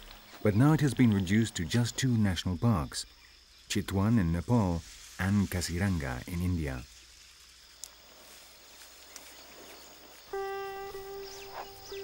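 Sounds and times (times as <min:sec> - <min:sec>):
high insect drone: 0:00.0 - 0:12.0
sitar music: 0:10.3 - 0:12.0.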